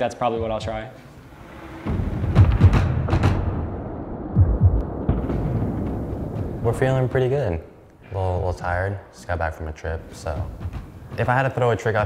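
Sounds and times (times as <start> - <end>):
heavy thuds: 1.7 - 7.4.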